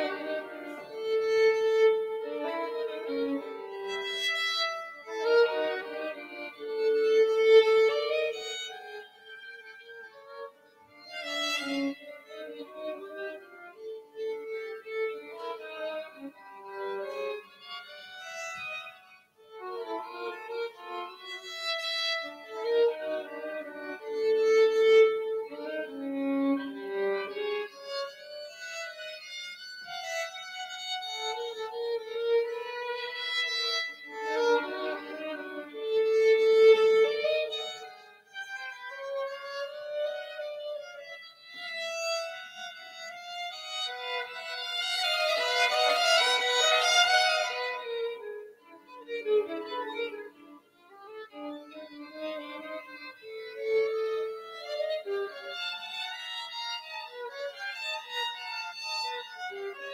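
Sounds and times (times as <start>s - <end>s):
violin duet: 0.0s - 59.9s.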